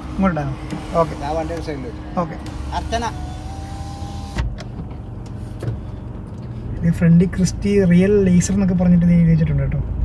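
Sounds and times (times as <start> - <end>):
power window motor whine: 0.0 - 4.6
low engine hum: 0.0 - 10.0.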